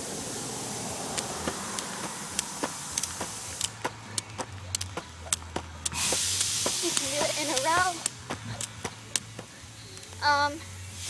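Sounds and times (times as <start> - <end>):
steady hiss: 0.0 - 11.0
jump rope slapping ground: 1.1 - 9.5.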